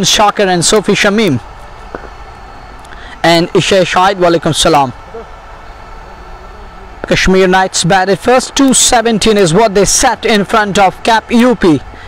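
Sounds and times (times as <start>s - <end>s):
faint steady hums: 0.0s - 12.0s.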